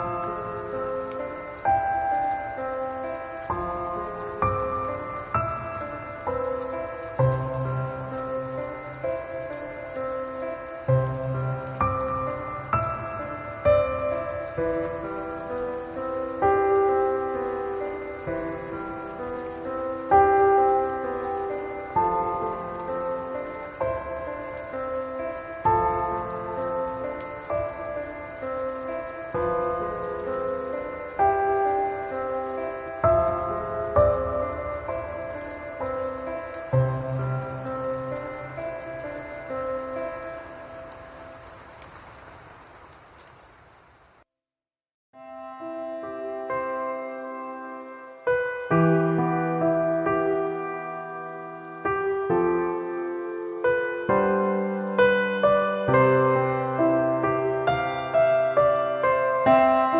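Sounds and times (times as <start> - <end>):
slow calm piano music: 0.0 - 43.4, 45.2 - 59.9
rain hissing: 0.0 - 44.2, 47.8 - 59.9.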